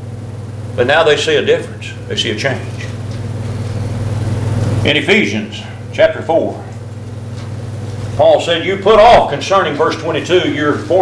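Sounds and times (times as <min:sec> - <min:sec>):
steady low hum: 0:00.0 - 0:11.0
man speaking: 0:00.8 - 0:03.0, 0:04.8 - 0:06.8, 0:08.2 - 0:11.0.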